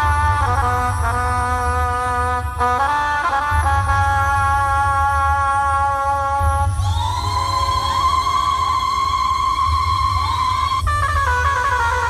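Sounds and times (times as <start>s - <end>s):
heavy pulsing bass: 0.0s - 12.0s.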